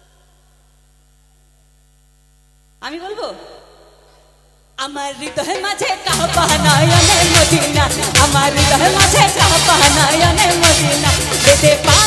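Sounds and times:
electrical mains hum: 0.0 - 5.0
woman speaking through microphone: 2.8 - 3.7.

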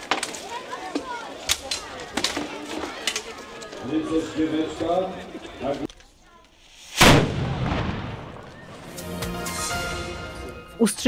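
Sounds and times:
cannon blast with echo: 7.0 - 8.8.

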